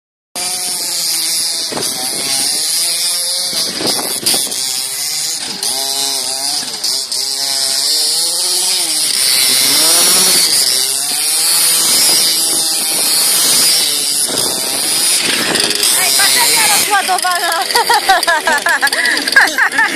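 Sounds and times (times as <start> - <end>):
small two-stroke engine revving: 0.4 - 19.9.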